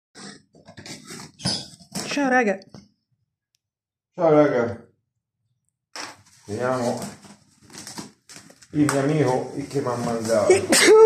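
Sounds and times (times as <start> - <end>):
packing tape ripping off cardboard: 6.9 - 9.1.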